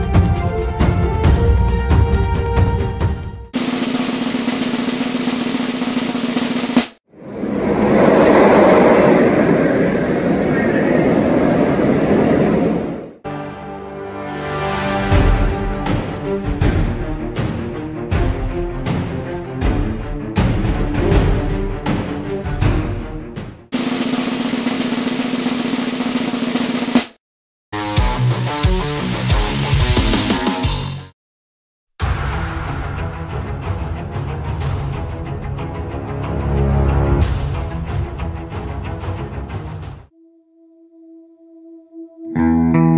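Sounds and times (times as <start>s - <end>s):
background music: 0.0s - 3.6s, 13.3s - 23.7s, 32.0s - 42.9s
snare drum roll: 3.6s - 7.0s, 23.7s - 27.2s
roller coaster rumbling on track: 7.2s - 13.2s.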